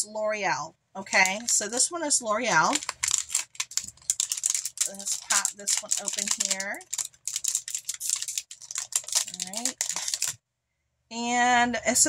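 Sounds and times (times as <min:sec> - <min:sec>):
plastic packaging crinkling: 0:01.1 - 0:10.4.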